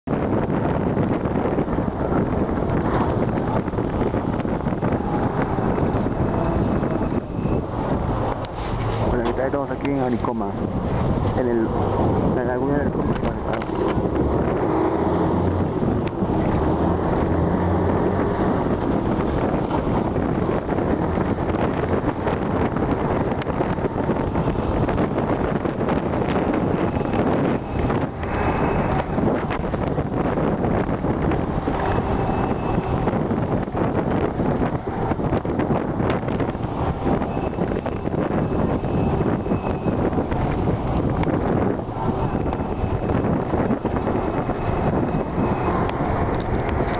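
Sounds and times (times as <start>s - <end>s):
bus engine and road noise: 0.0s - 46.9s
wind noise on microphone: 0.0s - 46.9s.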